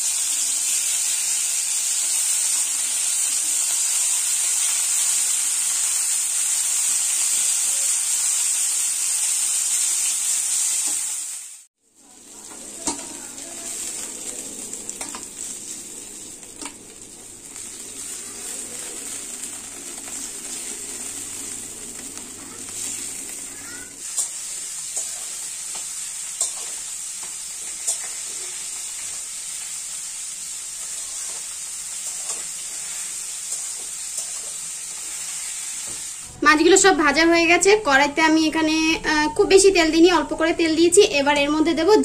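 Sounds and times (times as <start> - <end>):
fish sizzling in hot oil: 0.0 - 36.3.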